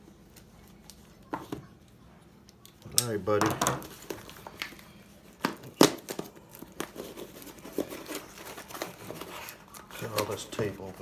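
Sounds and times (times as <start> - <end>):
tape crinkling and tearing on cardboard: 5.4 - 11.0.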